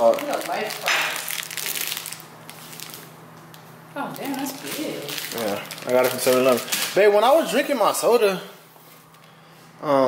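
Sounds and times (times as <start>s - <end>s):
plastic wrapper crinkling: 0.0s - 8.0s.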